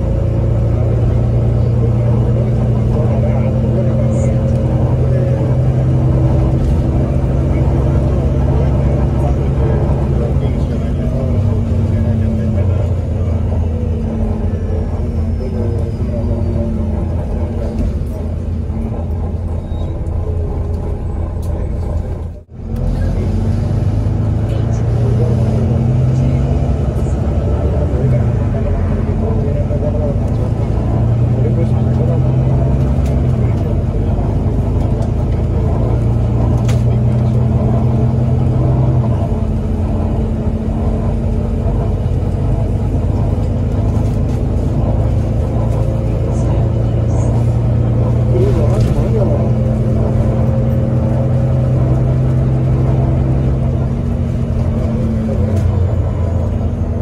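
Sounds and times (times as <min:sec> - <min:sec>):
bus diesel engine drone: 0:00.0 - 0:57.0.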